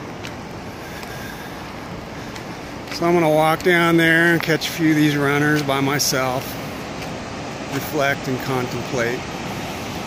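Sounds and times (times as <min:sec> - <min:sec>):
outdoor background rush: 0:00.0 - 0:10.0.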